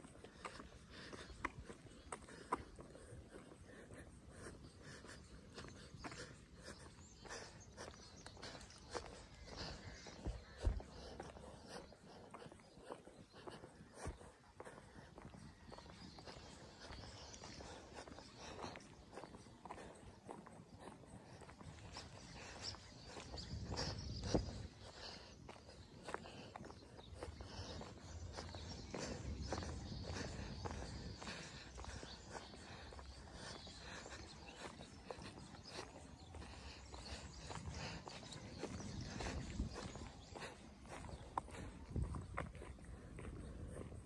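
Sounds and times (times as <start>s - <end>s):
footsteps on concrete: 0.0s - 44.0s.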